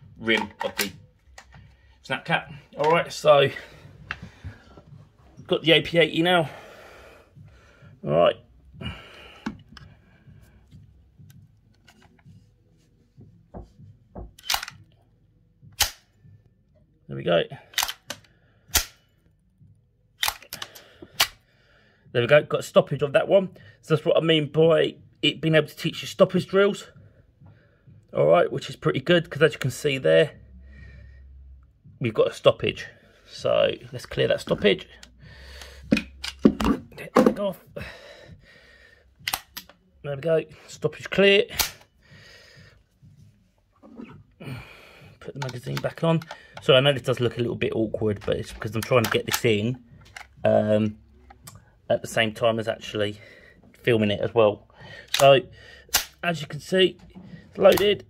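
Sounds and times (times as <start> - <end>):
rifle action clicking: 14.4 - 14.9, 15.8 - 16.0, 17.7 - 19.0, 20.2 - 21.4, 39.2 - 39.8, 55.9 - 56.2.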